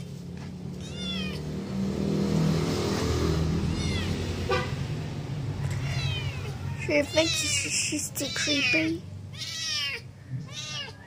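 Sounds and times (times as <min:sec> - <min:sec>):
vehicle engine humming: 0:00.0 - 0:11.0
kitten mewing: 0:00.8 - 0:01.5, 0:03.6 - 0:04.5, 0:05.6 - 0:11.0.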